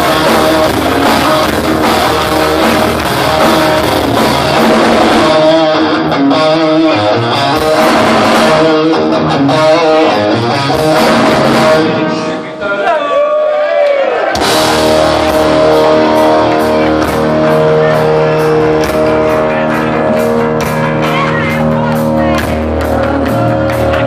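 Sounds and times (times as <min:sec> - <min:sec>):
heavy metal band playing: 0:00.0 - 0:13.1, 0:14.1 - 0:24.0
electric guitar held notes: 0:14.4 - 0:24.0.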